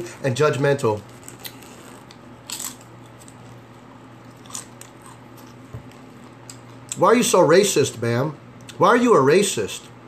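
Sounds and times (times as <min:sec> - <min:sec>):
person chewing crunchy snack: 0:01.1 - 0:07.0.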